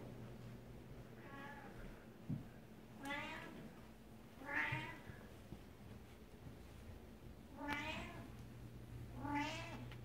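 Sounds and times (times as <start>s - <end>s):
cat meowing: 4.4s - 5.0s, 7.6s - 8.3s, 9.2s - 9.9s.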